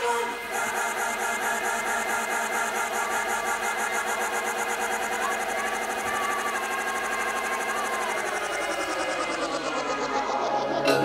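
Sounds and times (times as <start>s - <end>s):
rapid hi-hat ticking: 0.0s - 11.0s
sustained synth tones: 0.0s - 11.0s.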